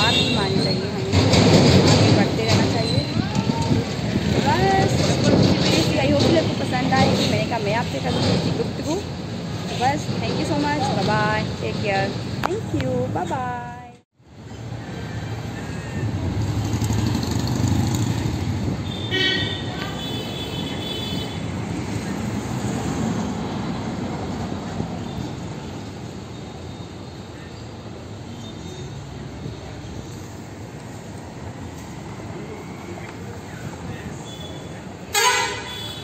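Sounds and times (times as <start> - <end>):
roadside traffic noise: 0.0 - 36.0
vehicle engine rumble passing: 14.3 - 18.9.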